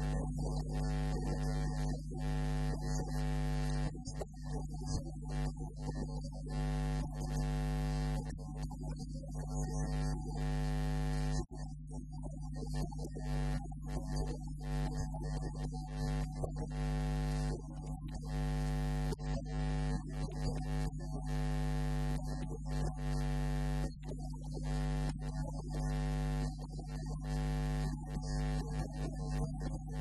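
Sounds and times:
electrical mains hum: 0.0 - 30.0.

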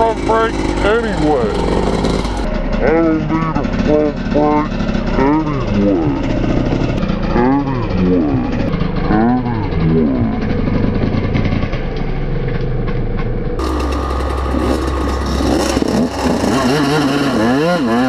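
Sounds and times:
dirt bike engines revving: 0.0 - 18.0
steady engine drone: 0.0 - 18.0.

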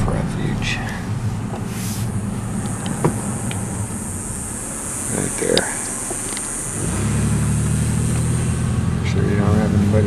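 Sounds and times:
car engine and tyre rumble: 0.0 - 10.0
road hiss: 0.0 - 10.0.

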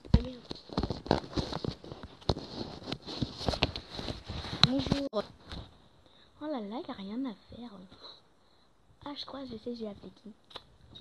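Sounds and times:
faint steady hiss: 3.6 - 11.0.

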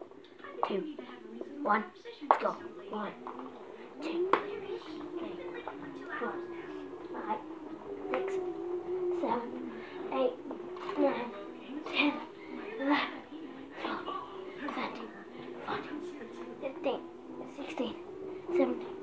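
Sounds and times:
faint background music: 0.0 - 19.0.

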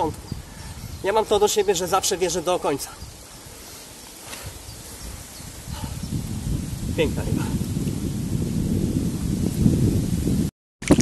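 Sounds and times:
rustling and buffeting noise: 0.0 - 11.0.

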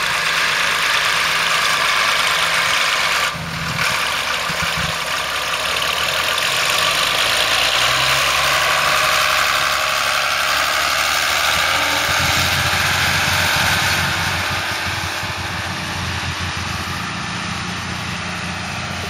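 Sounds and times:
tractor diesel engine running: 0.0 - 19.0.

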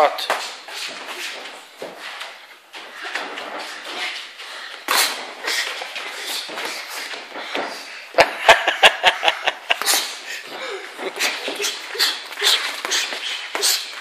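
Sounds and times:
boxing gloves thudding: 4.7 - 7.9.

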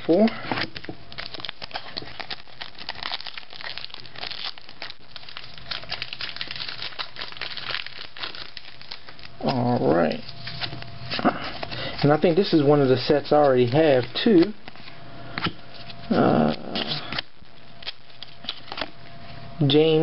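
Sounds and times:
foil wrappers crinkling and tearing: 0.0 - 15.0, 15.6 - 19.0.

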